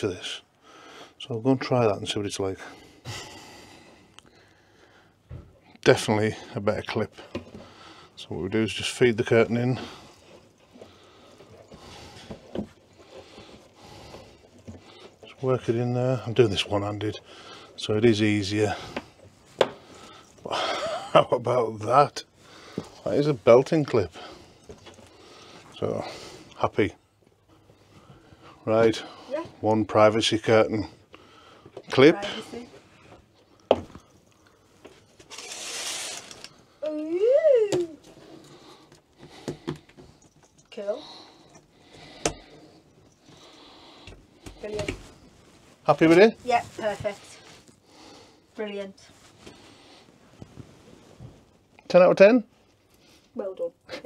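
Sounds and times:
fabric curtain rustling: 35.2 - 36.6, 45.1 - 47.8
fabric curtain swishing: 35.3 - 36.4.

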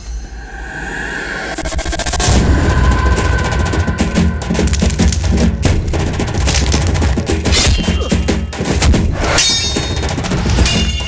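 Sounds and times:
low rumble: 0.0 - 7.1
crackling rush: 1.5 - 9.2.

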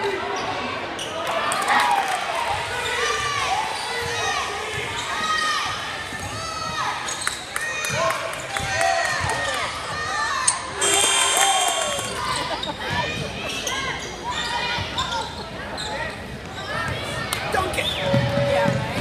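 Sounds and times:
crowd voices: 9.6 - 19.0
shrill tone: 10.8 - 12.6.

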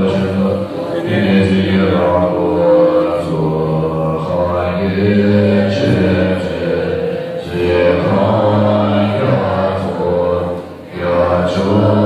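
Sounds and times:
monks chanting in unison: 0.0 - 12.0.

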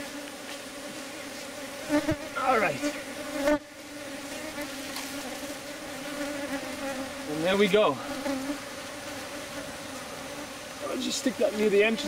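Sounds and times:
bees buzzing: 0.0 - 12.0
deeper buzz close by: 0.0 - 12.0.

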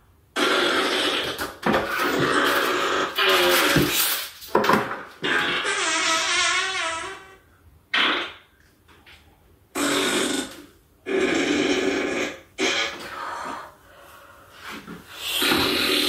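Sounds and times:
farts: 0.3 - 8.5, 9.7 - 13.7, 15.1 - 16.0.

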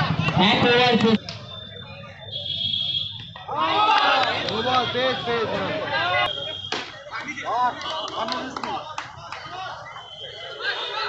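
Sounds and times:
loud shouting: 3.4 - 11.0
high-pitched whistle: 6.2 - 7.0, 9.8 - 11.0.

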